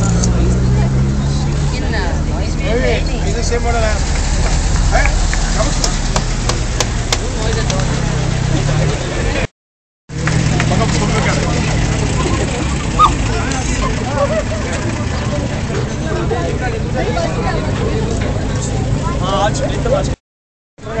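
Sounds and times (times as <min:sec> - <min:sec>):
crowd chatter: 0:00.0 - 0:09.5, 0:10.1 - 0:20.2
car engine idling: 0:02.2 - 0:09.5, 0:10.2 - 0:20.1.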